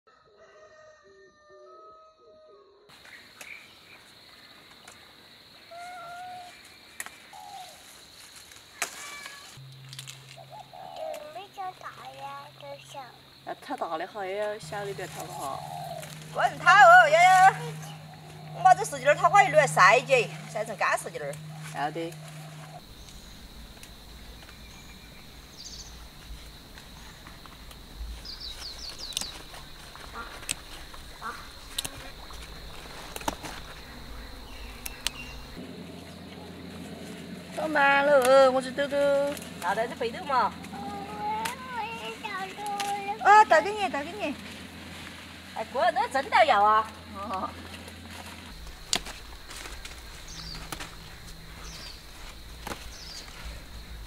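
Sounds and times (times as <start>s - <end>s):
birds singing and calling: 3.0s - 44.8s, 46.9s - 54.0s
high-pitched whine: 14.6s - 28.2s.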